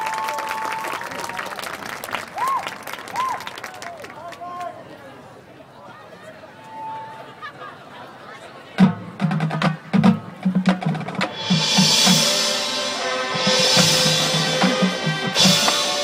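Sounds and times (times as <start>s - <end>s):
percussion strikes and drum hits: 8.8s - 16.0s
horns playing sustained chords: 12.2s - 16.0s.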